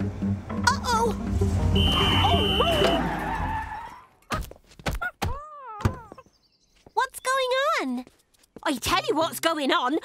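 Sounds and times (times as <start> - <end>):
truck engine rumbling: 0.0 - 3.9
brakes screeching: 1.2 - 4.3.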